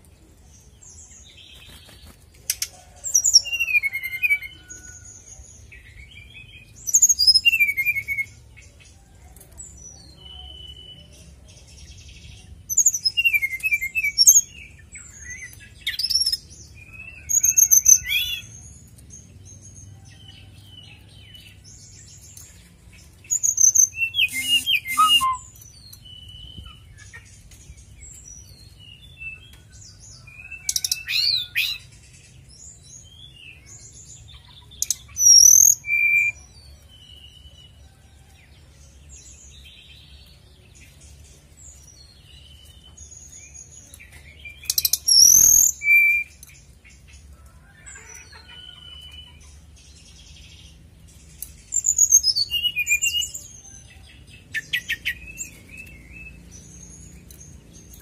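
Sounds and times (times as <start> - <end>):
bird singing whistled notes: 5.8 - 8.4, 12.0 - 18.6, 23.2 - 26.8, 34.8 - 37.5, 44.4 - 46.6, 51.6 - 58.0.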